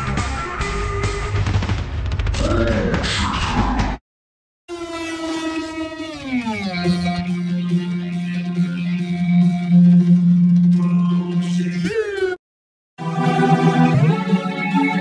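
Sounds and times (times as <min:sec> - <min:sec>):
droning note sliding down: 0:04.7 - 0:11.4.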